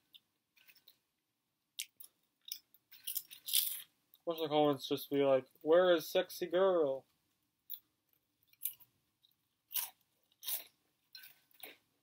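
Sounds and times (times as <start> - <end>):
crunchy snack being chewed: 7.7 - 11.8.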